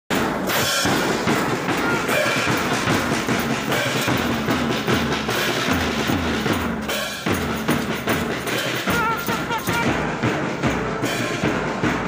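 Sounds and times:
low drum beats: 0:00.1 - 0:12.0
snare drums: 0:00.1 - 0:12.0.

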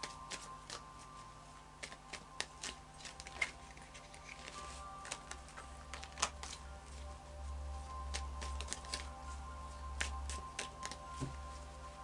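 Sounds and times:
cards clicking and snapping: 0:00.0 - 0:00.9, 0:01.8 - 0:06.6, 0:08.1 - 0:09.1, 0:10.0 - 0:11.3.

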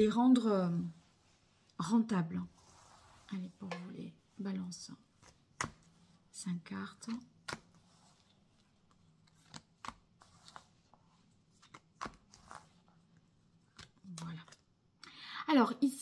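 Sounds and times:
cards sliding and rustling: 0:07.1 - 0:14.6
cards snapping on table: 0:11.6 - 0:12.6.

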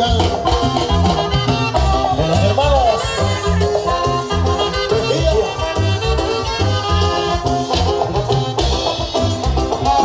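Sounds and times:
live dance band playing: 0:00.0 - 0:10.0.

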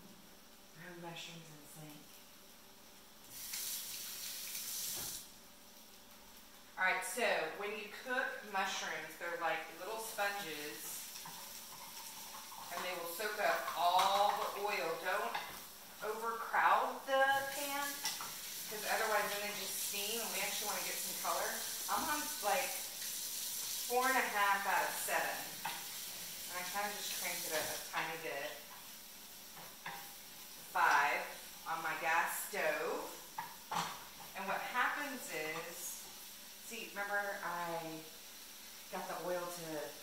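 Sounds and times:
mushrooms sizzling in a frying pan: 0:00.0 - 0:40.0
wooden spoon stirring: 0:10.9 - 0:14.7.

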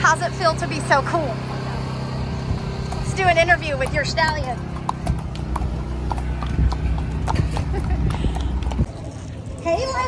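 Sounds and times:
horse hooves clip-clopping on pavement: 0:00.0 - 0:10.0
steady low rumble: 0:00.0 - 0:10.0.

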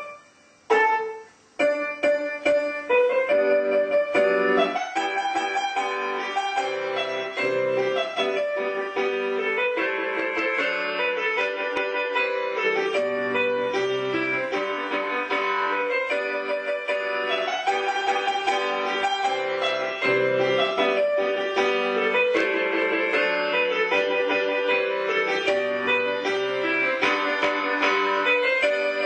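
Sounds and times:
solo piano playing: 0:00.0 - 0:29.0.

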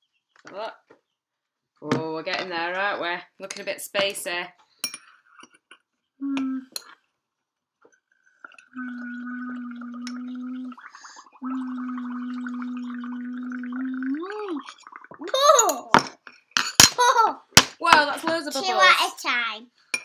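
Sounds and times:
person humming: 0:06.2 - 0:06.8, 0:08.8 - 0:14.6
bubbling through a straw: 0:08.3 - 0:16.0
child chattering excitedly: 0:18.6 - 0:19.6.

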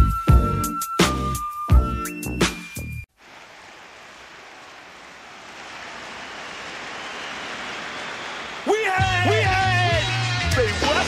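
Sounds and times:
music: 0:00.0 - 0:03.1, 0:09.0 - 0:11.0
steady rushing noise: 0:03.2 - 0:09.0.

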